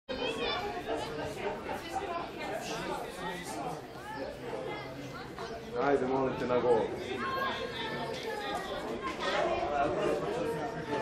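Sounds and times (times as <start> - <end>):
indistinct chatter: 0.1 - 11.0.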